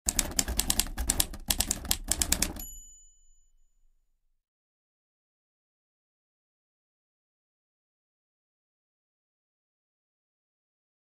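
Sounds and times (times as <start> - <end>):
typewriter key strikes: 0.1 - 3.0
typewriter bell ding: 0.1 - 3.9.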